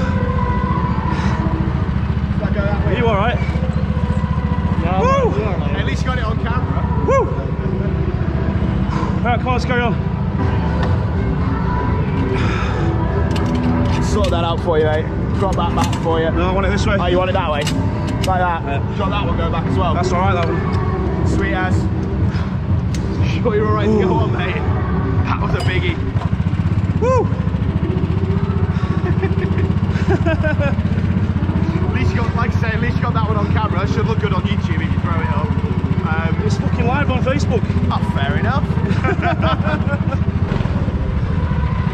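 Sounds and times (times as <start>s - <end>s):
go-kart engine rumbling: 0.0s - 41.9s.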